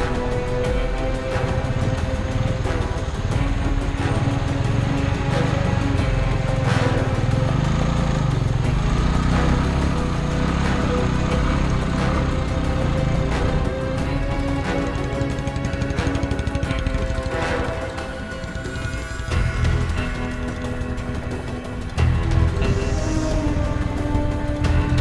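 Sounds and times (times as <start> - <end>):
background music: 0.0 - 25.0
motorcycle engine running: 0.0 - 25.0.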